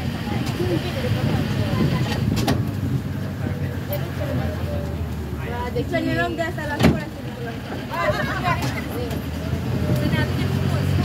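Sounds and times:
vehicle engine rumble: 0.0 - 11.0.

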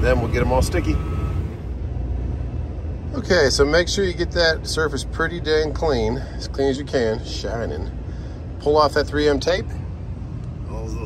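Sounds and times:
diesel truck engine idling: 0.0 - 11.0.

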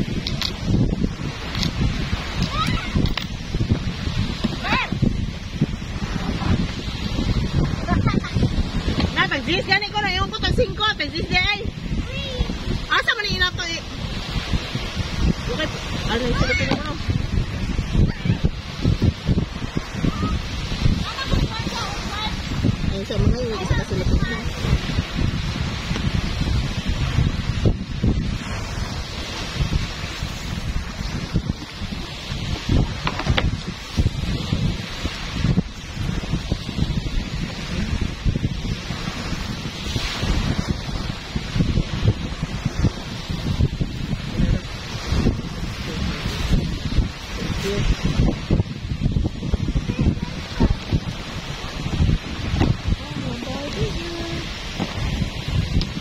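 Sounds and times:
small waves washing onto shore: 0.0 - 56.0
wind buffeting microphone: 0.0 - 56.0.

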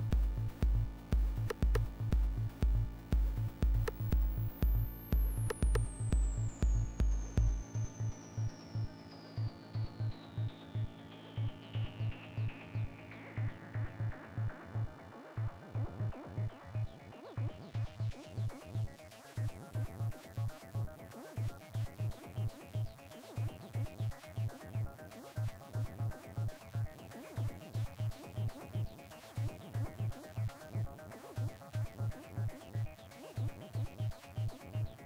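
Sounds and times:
steady kick drum: 0.0 - 8.1
deep bass: 0.0 - 8.2.

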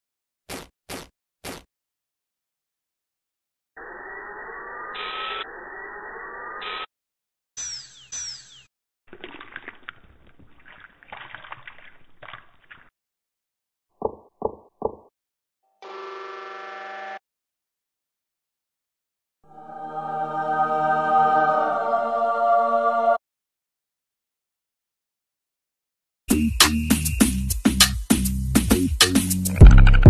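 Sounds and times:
whirring with rising whines: 3.8 - 6.9.

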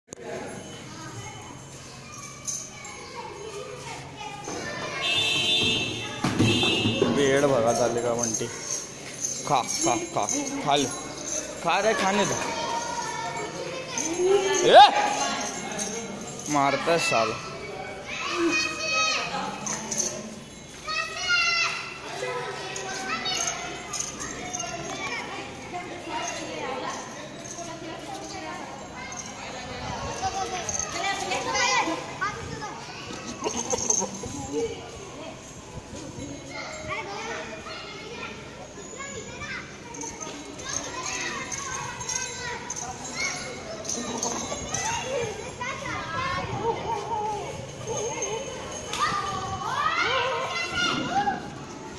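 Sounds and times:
background chatter: 0.0 - 51.9
children shouting and calling out: 0.2 - 51.9.

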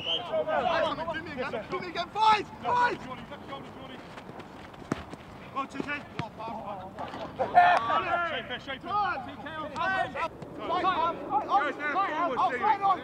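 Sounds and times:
footballers shouting: 0.0 - 3.9, 5.5 - 13.0
footballs being kicked: 4.2 - 6.6.

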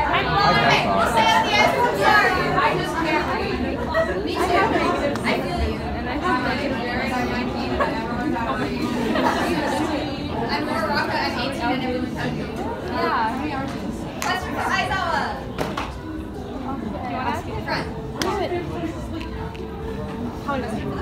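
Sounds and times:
people talking in a large room: 0.0 - 21.0.

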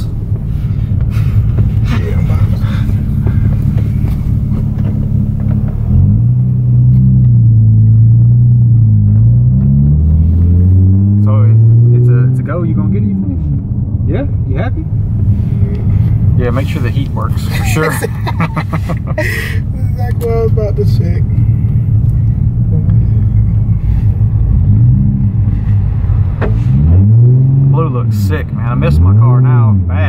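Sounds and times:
car engine drone from inside cabin: 0.0 - 30.0.

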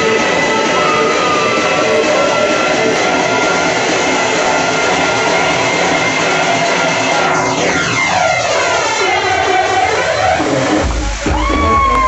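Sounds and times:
club dance music: 0.0 - 12.0.

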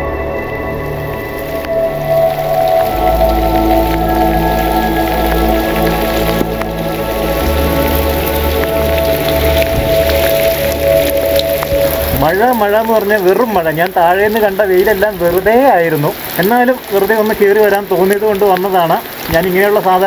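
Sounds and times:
slow background music: 0.0 - 15.1
steady rain falling: 0.0 - 20.0
drops ticking close by: 0.8 - 20.0.

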